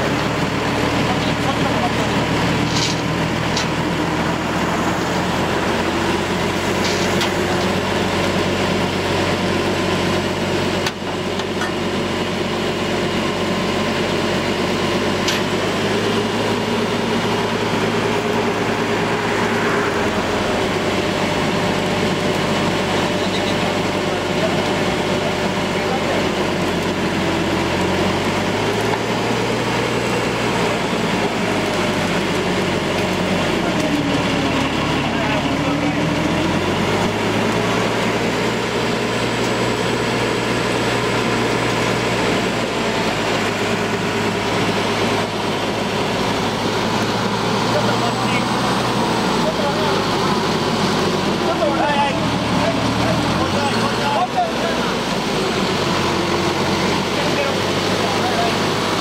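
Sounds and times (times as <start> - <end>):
truck engine idling: 0.0 - 59.0
people talking: 0.7 - 3.7, 18.5 - 27.8, 33.0 - 37.1, 47.5 - 59.0.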